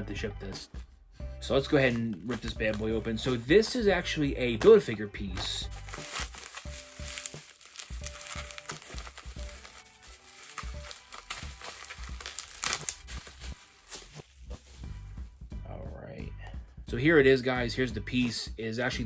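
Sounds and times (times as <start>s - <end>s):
plastic packaging crinkling: 5.7s - 14.8s.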